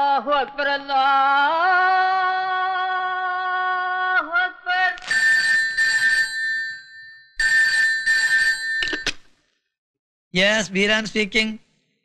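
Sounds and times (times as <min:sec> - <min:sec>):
desk telephone ringing: 0:05.0 - 0:09.3.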